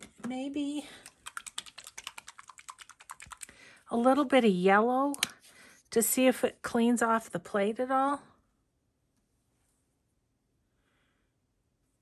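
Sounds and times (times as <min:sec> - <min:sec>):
plastic paint bottle shaken clicking: 0:00.0 - 0:03.6.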